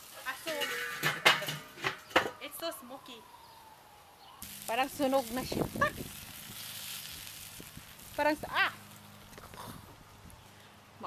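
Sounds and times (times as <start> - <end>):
grill lid clanking: 0.2 - 2.4
woman's voice: 2.4 - 3.3, 4.7 - 6.0, 8.2 - 8.8.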